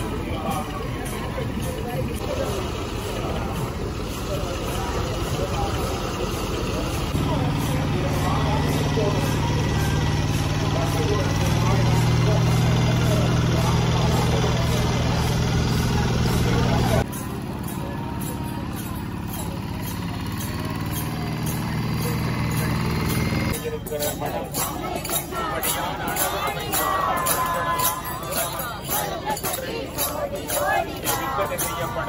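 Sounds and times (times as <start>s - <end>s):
crowd chatter: 0.0s - 32.0s
tractor engine humming: 0.0s - 32.0s.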